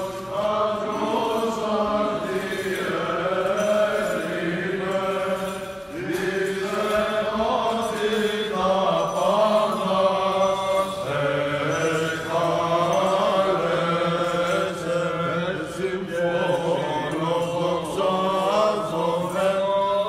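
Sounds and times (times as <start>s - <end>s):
men singing chant: 0.0s - 20.0s.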